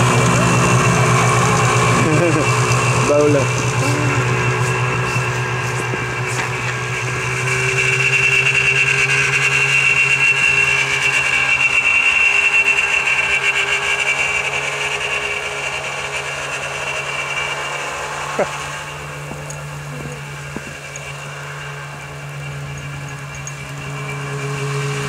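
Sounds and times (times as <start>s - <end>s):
snowmobile engine running: 0.0s - 25.0s.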